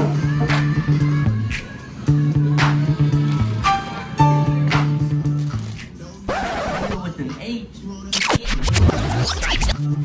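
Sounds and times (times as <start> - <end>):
background music: 0.0 - 10.0
record scratching: 6.3 - 7.1, 8.1 - 10.0.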